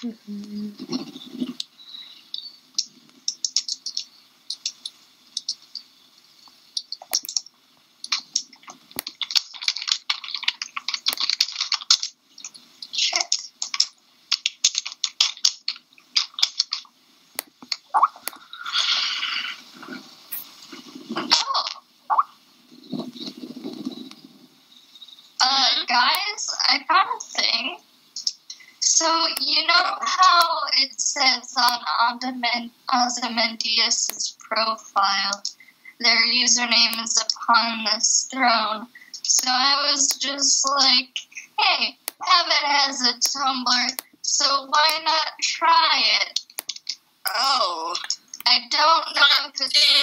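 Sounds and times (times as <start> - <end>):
mouse clicking: 1.5 - 18.4, 28.2 - 28.7, 33.7 - 34.3, 35.2 - 35.7, 36.5 - 38.0, 39.0 - 45.2, 46.3 - 47.4
keyboard typing: 2.8 - 5.6, 8.1 - 12.2.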